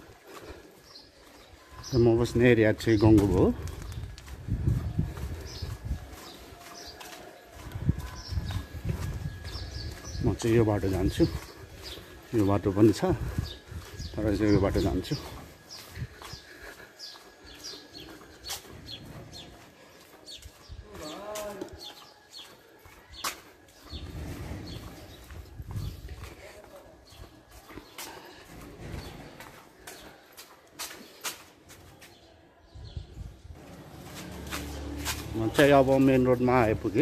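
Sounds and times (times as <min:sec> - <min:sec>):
birds chirping: 0:00.0 - 0:37.0.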